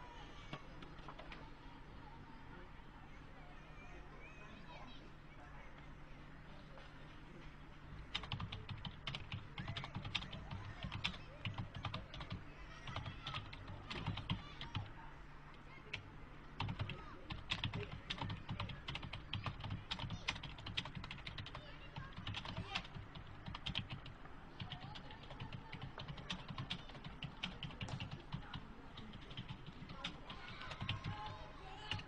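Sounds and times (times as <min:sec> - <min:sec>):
typing on computer keyboard: 0:08.1 - 0:14.9, 0:16.6 - 0:32.0.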